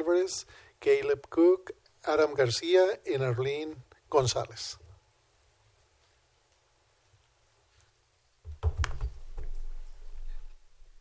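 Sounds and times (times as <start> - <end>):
knocks on microphone: 8.5 - 9.6.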